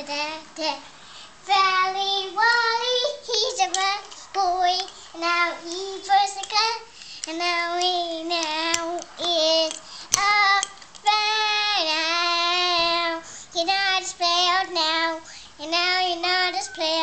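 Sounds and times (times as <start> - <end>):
girl singing: 0.0 - 17.0.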